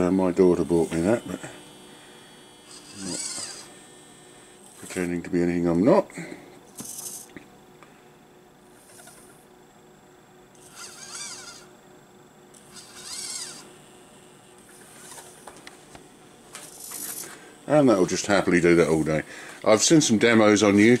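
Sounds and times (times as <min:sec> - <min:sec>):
servo motors whining: 0:00.0 - 0:05.0, 0:10.6 - 0:11.7, 0:12.6 - 0:19.2.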